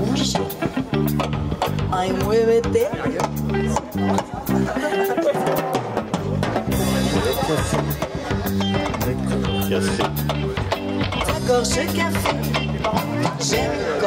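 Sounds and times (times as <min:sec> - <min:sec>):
drum kit steady beat: 0:00.0 - 0:14.0
guitar: 0:00.0 - 0:14.0
repeating bass line: 0:06.2 - 0:13.8.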